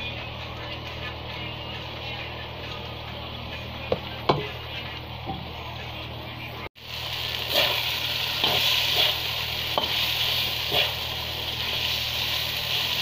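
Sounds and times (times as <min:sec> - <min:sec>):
fish sizzling in a wok: 0:06.8 - 0:13.0
metal spatula scraping pan: 0:08.4 - 0:11.1.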